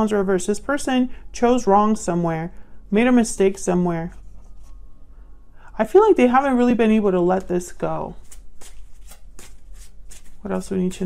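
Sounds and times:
cards being shuffled: 7.4 - 11.0.

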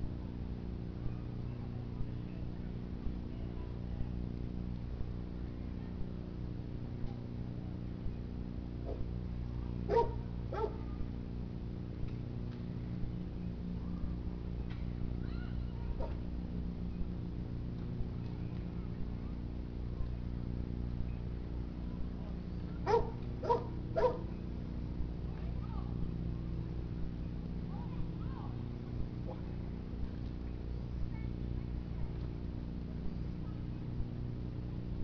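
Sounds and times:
steady low hum: 0.0 - 35.0
bark-like yelps: 9.9 - 10.8, 22.8 - 24.2.

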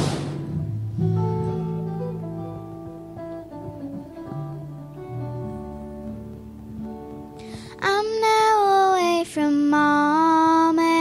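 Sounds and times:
soft guitar accompaniment: 0.0 - 11.0
girl singing a long note: 7.5 - 11.0.

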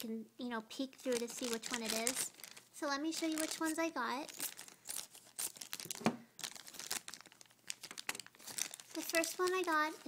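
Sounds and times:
plastic wrapping crinkling: 0.7 - 10.0.

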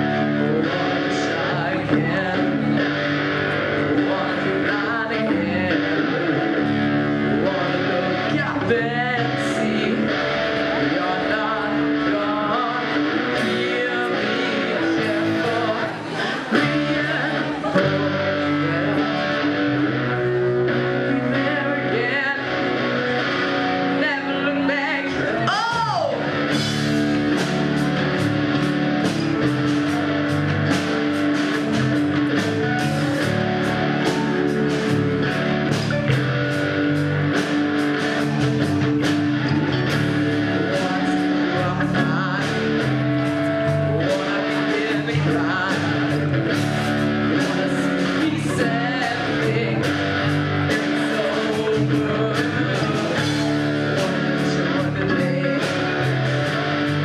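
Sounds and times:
bass guitar: 0.0 - 57.0
electric guitars: 0.0 - 57.0
drum kit with cymbals: 25.6 - 43.0.

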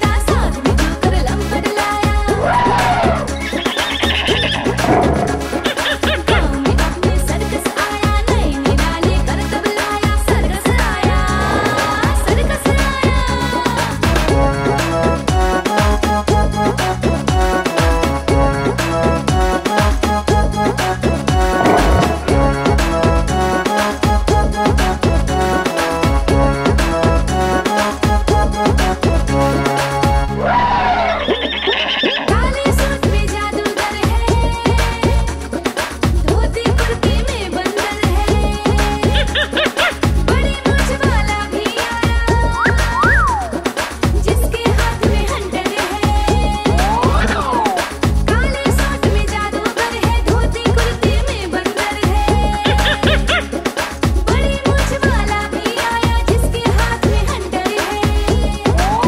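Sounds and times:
upbeat children's song: 0.0 - 59.0
horse whinny: 2.4 - 6.4, 30.4 - 32.4.

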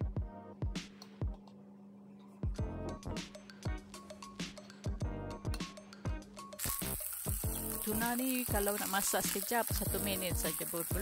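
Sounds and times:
music with steady beat: 0.0 - 1.6, 2.4 - 11.0
fish sizzling in frying pan: 6.6 - 11.0.

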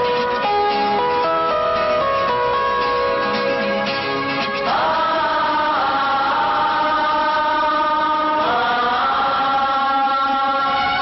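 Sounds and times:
film song with long sung notes: 0.0 - 11.0.

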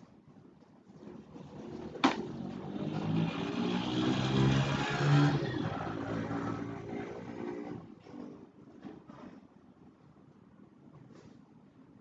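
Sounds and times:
motor vehicle passing by: 1.4 - 7.9.

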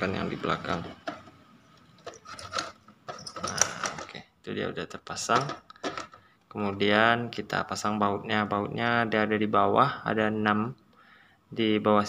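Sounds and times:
plastic clicks and rattles: 2.0 - 4.2, 5.3 - 6.3.

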